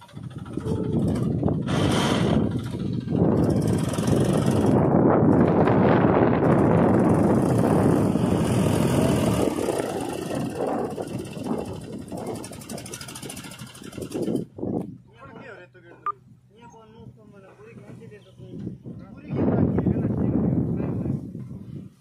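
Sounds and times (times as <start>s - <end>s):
tractor diesel engine running hard: 0.0s - 14.7s.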